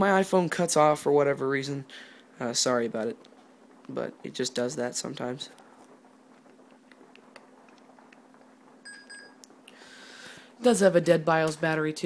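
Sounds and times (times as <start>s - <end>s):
faint laptop hum: 0.0s - 12.0s.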